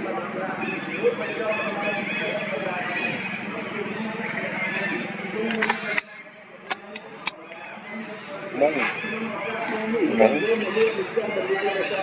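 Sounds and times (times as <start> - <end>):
people talking: 0.0 - 12.0
sharp click: 6.7 - 7.4.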